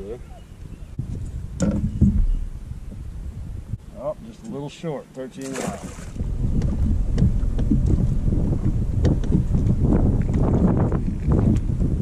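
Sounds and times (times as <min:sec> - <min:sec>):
wind rumbling on microphone: 0:00.0 - 0:04.7, 0:05.4 - 0:12.0
knocks on boat deck: 0:06.5 - 0:08.1.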